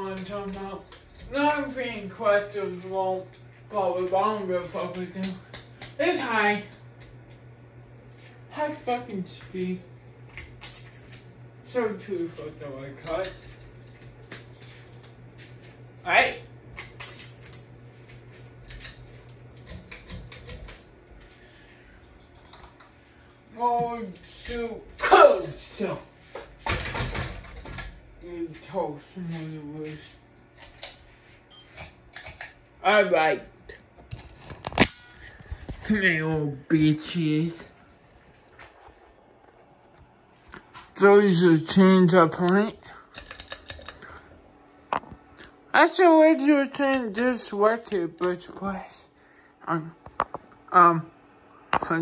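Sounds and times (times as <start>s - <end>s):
ceiling fan humming: 0.0s - 52.0s.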